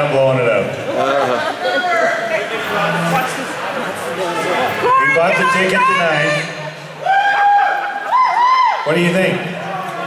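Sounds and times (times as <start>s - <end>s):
person whooping: 7.0s - 8.8s.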